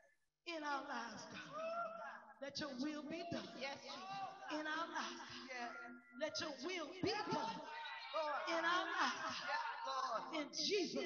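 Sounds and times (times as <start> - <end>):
person speaking loudly: 0.8 - 11.0.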